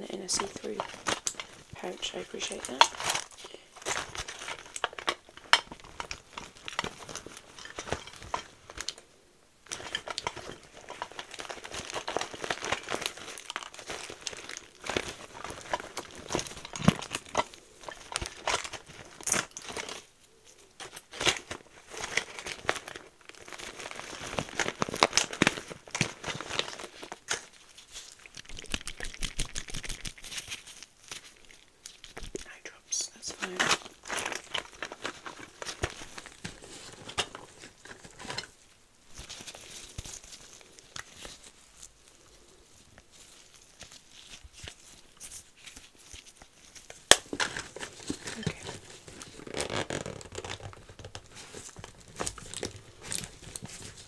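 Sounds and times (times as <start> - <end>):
plastic pouch crinkling: 0.0 - 54.0
small items clicking: 0.1 - 9.1, 9.7 - 32.6.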